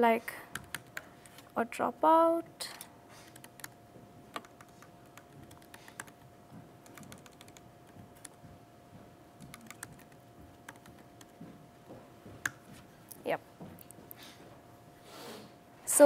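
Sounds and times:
typing on computer keyboard: 0:00.5 - 0:01.4, 0:03.3 - 0:06.2, 0:06.8 - 0:07.6, 0:08.2 - 0:08.4, 0:09.4 - 0:11.4.

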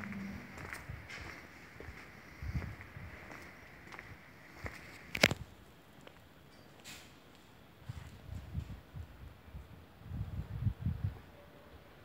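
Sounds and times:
footsteps on paving: 0:00.0 - 0:06.2.

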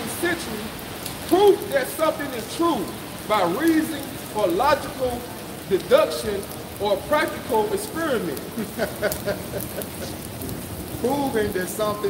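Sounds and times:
steady rain on pavement: 0:00.0 - 0:12.0.

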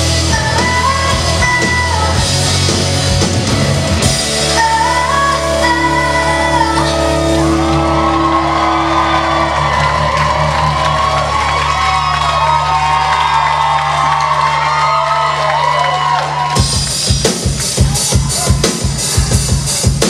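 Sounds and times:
drum kit fast beat: 0:00.0 - 0:04.7, 0:16.4 - 0:20.0
rock band sustained chord: 0:00.0 - 0:11.8
crowd cheering and whooping: 0:06.2 - 0:19.9.

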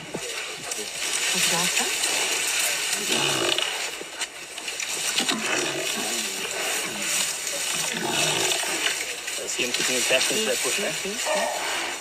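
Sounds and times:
animal growls and calls: 0:00.0 - 0:04.0, 0:05.1 - 0:09.3.

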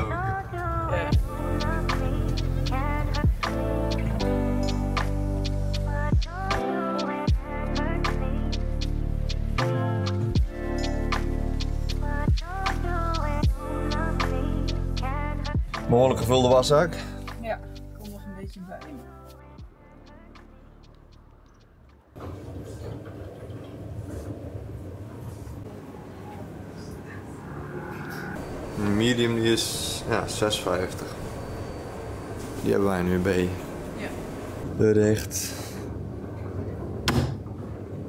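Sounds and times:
washing machines rumbling: 0:21.7 - 0:38.0
washing machine door click: 0:37.0 - 0:37.5.

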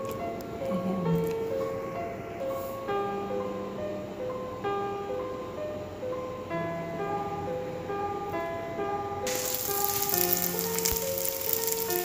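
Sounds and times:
background music: 0:06.6 - 0:12.0
food sizzling in hot oil: 0:09.3 - 0:12.0.

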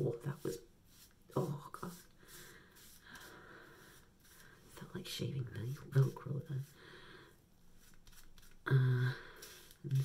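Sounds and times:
razor scraping wet hair: 0:00.2 - 0:04.7, 0:07.8 - 0:08.6, 0:09.3 - 0:10.0
person humming mm: 0:08.7 - 0:10.0.

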